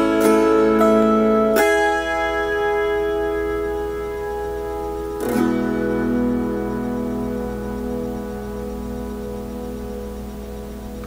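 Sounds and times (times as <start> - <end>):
autoharp chord ringing: 0.0 - 11.0.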